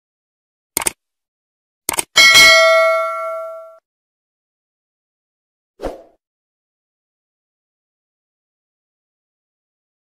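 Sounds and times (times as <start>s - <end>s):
double mouse click: 0.8s - 1.0s, 1.9s - 2.1s
bright bell ding: 2.2s - 3.8s.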